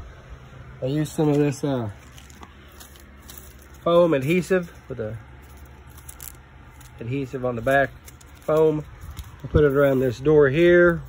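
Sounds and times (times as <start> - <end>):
faint handling noise: 1.0 - 11.0
man speaking: 7.0 - 7.9, 8.5 - 11.0.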